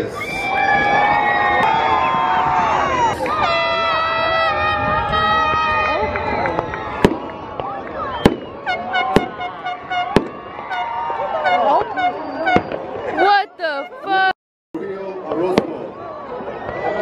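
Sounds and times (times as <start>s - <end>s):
fireworks bangs: 0.8s - 13.4s, 15.4s - 15.9s.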